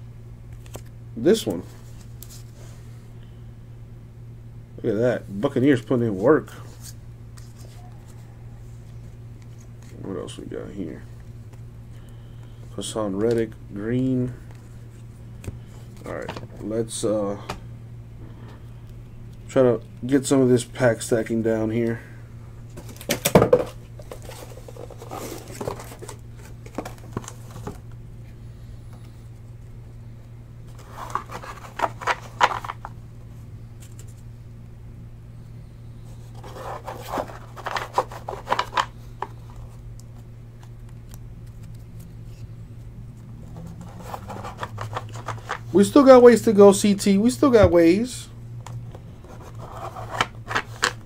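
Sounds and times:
steady low hum: 0.0 - 51.0
cards shuffling and rustling: 0.5 - 2.7, 5.4 - 8.2, 11.5 - 13.6, 22.7 - 27.9, 30.7 - 33.0, 33.8 - 34.3, 36.1 - 46.6, 48.7 - 51.0.

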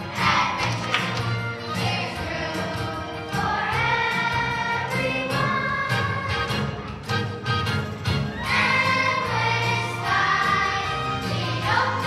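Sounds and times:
children's choir singing: 0.0 - 6.8, 8.4 - 12.0
instrumental accompaniment: 0.0 - 12.0.

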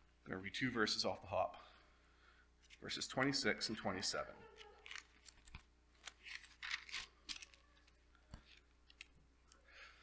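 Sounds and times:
pages being turned: 4.6 - 9.2.

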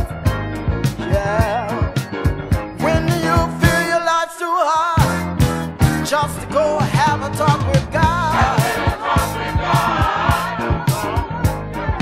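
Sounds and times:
band with drum beat and bass: 0.0 - 3.9, 5.0 - 6.2, 6.8 - 12.0
choir singing with vibrato: 8.0 - 12.0.

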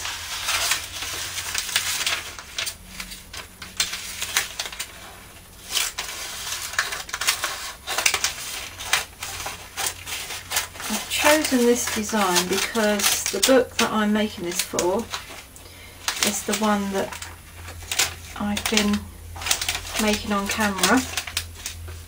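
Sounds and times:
plastic wrap crinkling: 0.0 - 22.0
scissors snipping cellophane: 5.7 - 15.4, 16.1 - 21.9.

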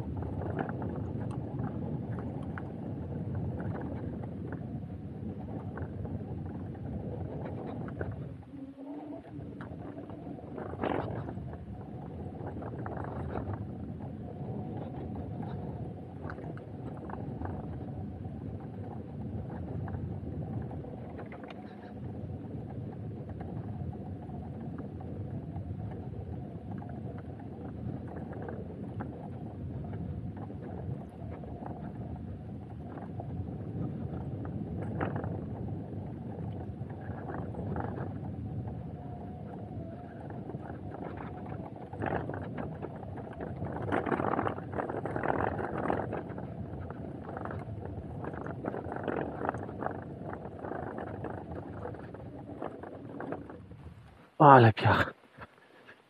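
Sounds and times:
wind on microphone: 0.0 - 56.0.

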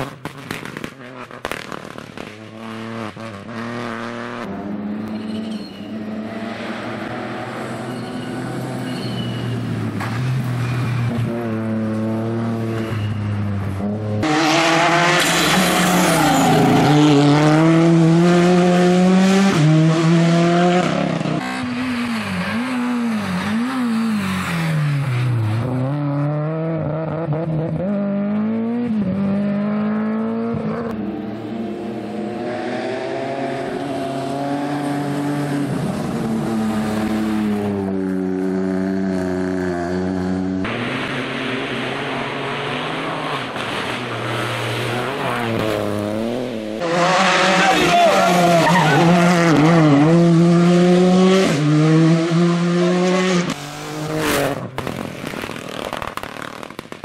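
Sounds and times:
rally car engines revving: 0.0 - 56.4.

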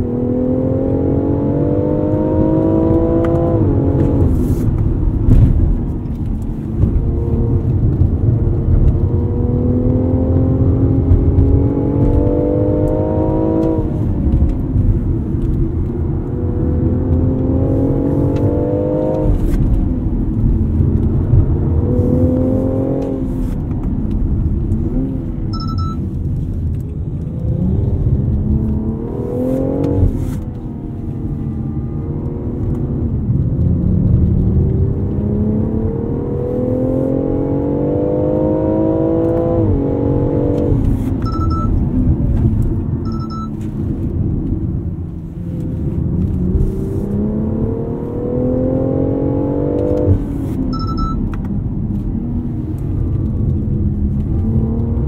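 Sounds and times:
car engine revving and shifting: 0.0 - 55.0.

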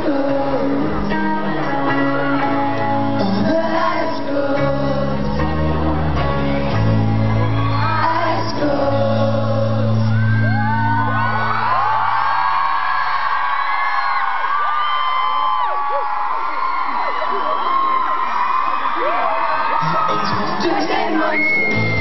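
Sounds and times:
crowd screaming and cheering: 0.0 - 22.0.

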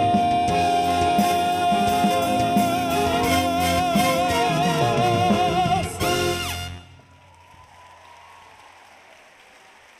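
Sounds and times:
faint audience applause: 6.8 - 9.9.

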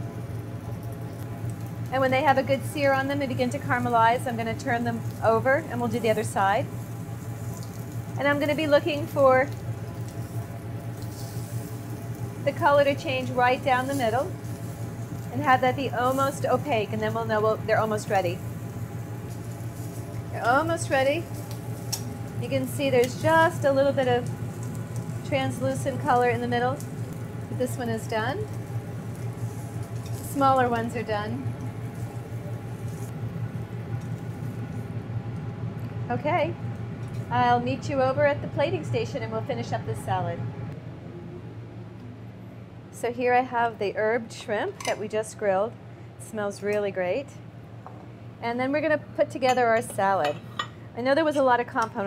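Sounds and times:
shrimp sizzling on a grill: 0.0 - 35.0
steady low hum: 0.0 - 52.0.

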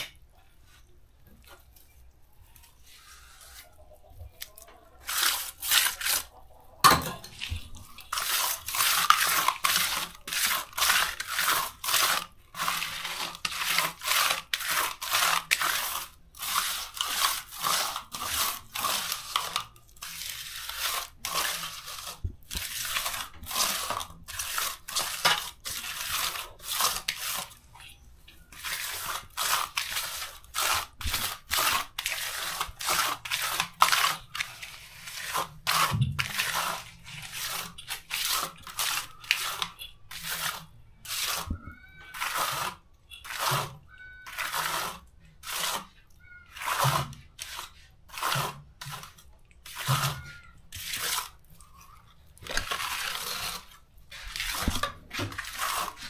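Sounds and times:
scraping crunching mud mix: 28.6 - 56.0.

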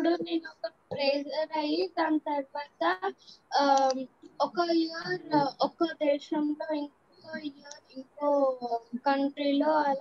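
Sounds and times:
girl talking over video call: 0.0 - 10.0.

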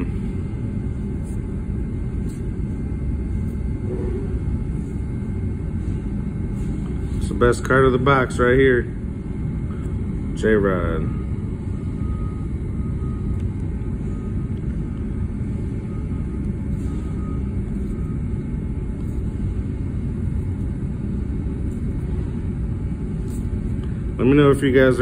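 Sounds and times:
low rumbling background noise: 0.0 - 25.0.

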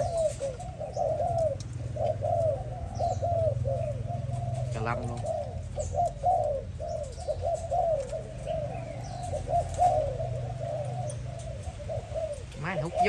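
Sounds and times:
doves cooing: 0.0 - 13.0
exhaust fan hum: 0.0 - 13.0.

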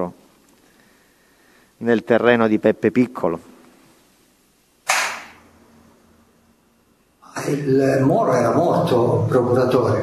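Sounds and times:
faint steady hum: 0.0 - 10.0.

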